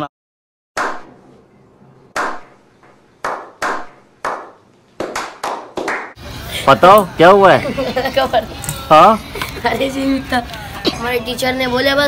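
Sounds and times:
slow hand clapping: 3.2s - 6.2s.

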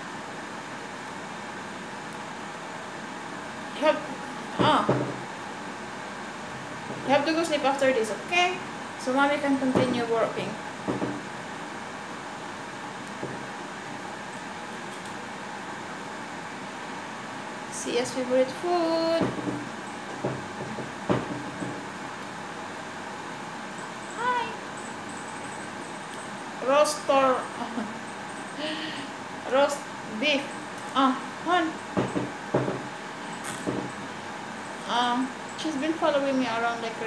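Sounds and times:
steady background hiss: 0.0s - 37.0s.

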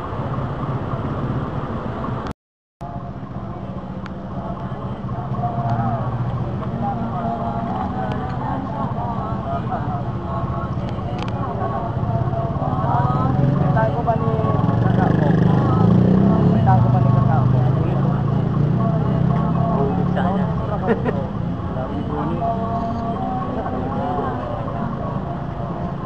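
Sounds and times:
crowd chattering: 2.8s - 26.0s.

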